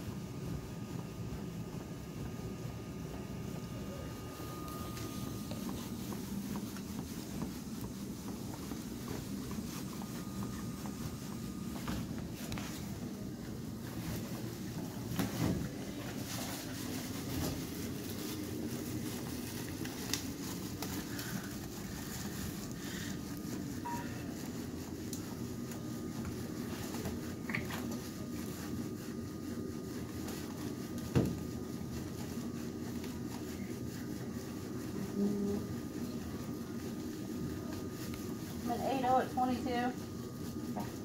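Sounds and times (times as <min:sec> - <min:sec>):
plastic sheeting rustling: 0:04.2 - 0:41.0.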